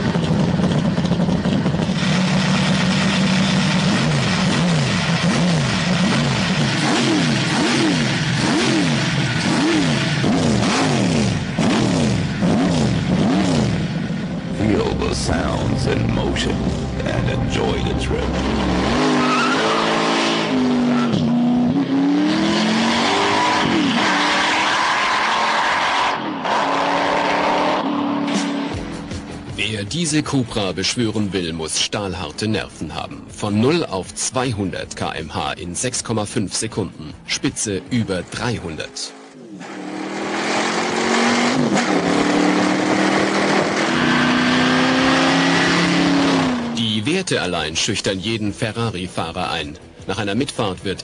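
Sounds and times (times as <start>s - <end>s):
car engine at full throttle: 0.0s - 31.5s, 37.0s - 47.6s
tyres squealing: 18.6s - 20.2s.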